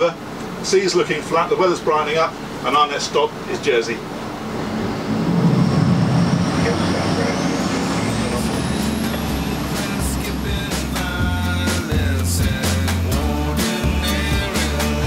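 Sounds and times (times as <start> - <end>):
motorboat engine rumble: 3.4 - 13.6
background music with beat: 8.7 - 15.0.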